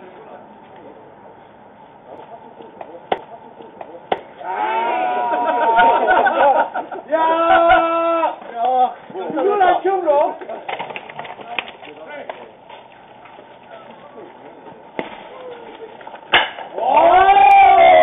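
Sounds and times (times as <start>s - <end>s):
players shouting calls: 2.2s - 6.1s, 7.0s - 10.1s, 16.7s - 18.0s.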